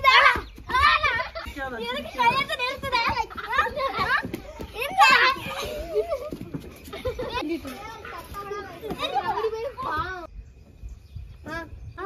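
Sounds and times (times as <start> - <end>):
child shouting: 0.0 - 1.3, 2.2 - 5.6
children's excited voices: 0.0 - 10.3.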